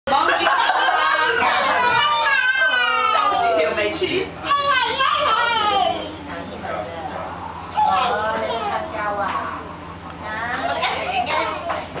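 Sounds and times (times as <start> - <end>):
steady low hum: 0.1 - 12.0
young children chattering: 0.1 - 12.0.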